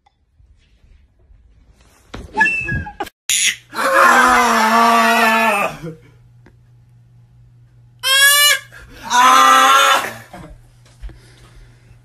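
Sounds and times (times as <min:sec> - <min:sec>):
baby yelling: 0:08.0 - 0:10.2.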